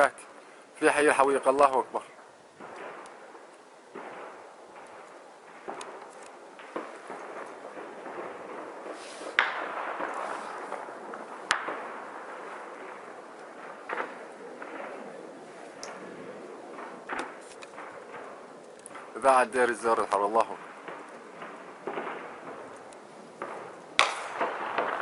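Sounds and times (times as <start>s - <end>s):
gunshots with echo: 0.8s - 25.0s.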